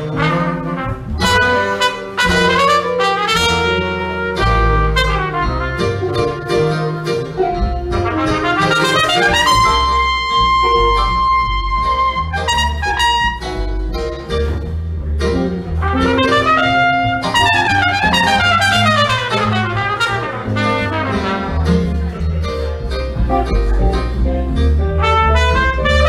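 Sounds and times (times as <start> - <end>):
trumpet playing jazz: 0.0 - 14.2, 15.3 - 22.2, 23.2 - 26.0
upright bass: 0.0 - 26.0.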